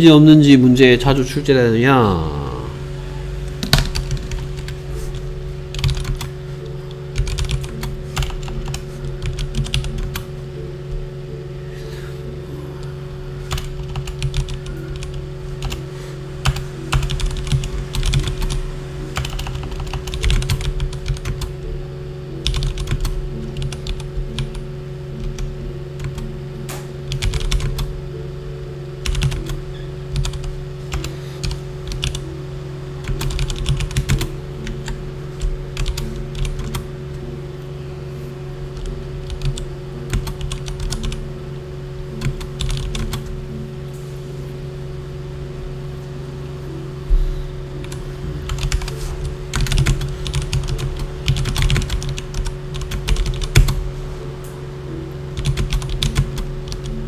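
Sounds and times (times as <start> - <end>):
steady low hum: 0.0 - 57.0
computer keyboard typing: 3.6 - 6.3, 7.1 - 10.3, 13.5 - 15.8, 16.4 - 18.6, 19.2 - 21.5, 22.4 - 24.6, 25.2 - 26.3, 27.1 - 27.9, 29.0 - 32.2, 33.0 - 36.8, 38.8 - 41.2, 42.2 - 43.3, 47.8 - 53.8, 55.4 - 57.0.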